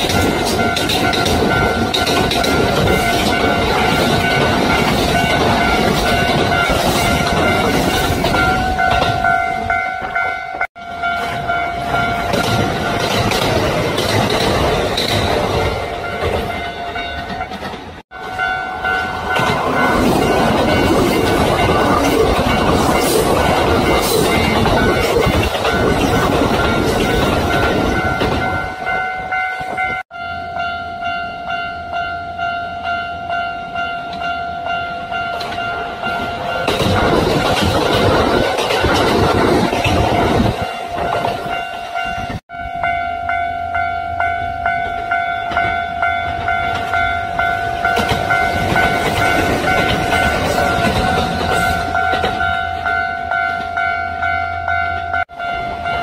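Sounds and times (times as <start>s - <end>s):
wheels clattering over rail joints: 0.0s - 10.3s, 11.0s - 30.0s, 35.1s - 42.4s, 44.6s - 55.3s.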